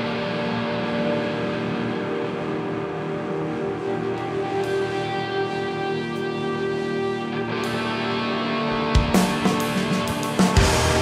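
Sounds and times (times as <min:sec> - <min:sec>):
droning electric guitar: 0:00.0 - 0:11.0.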